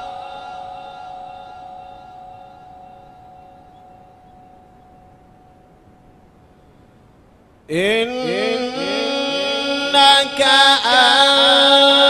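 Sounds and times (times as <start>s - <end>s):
man reciting a long held note: 0.0s - 2.6s, 7.7s - 12.0s
faint hiss: 0.0s - 12.0s.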